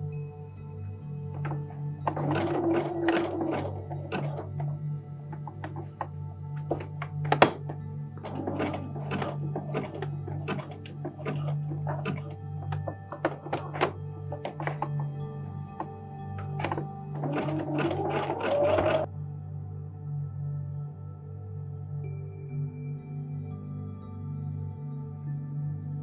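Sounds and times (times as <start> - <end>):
background music: 0.0 - 26.0
sewing machine stitching: 1.2 - 19.1
thunks and clicks of fabric: 1.4 - 19.1.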